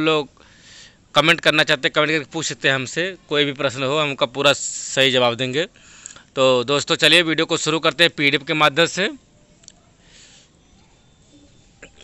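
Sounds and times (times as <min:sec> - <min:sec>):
faint breath into microphone: 0:00.3 - 0:01.1, 0:05.7 - 0:06.4, 0:10.0 - 0:10.8.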